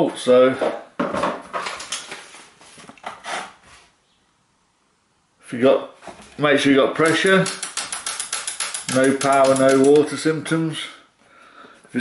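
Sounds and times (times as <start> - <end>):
rustling and handling noises: 1.0 - 4.0.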